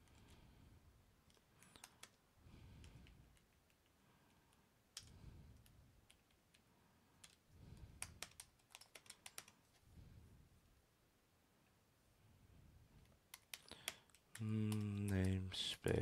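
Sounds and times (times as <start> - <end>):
faint computer keyboard typing: 0.0 - 0.5, 1.2 - 9.8, 13.0 - 16.0.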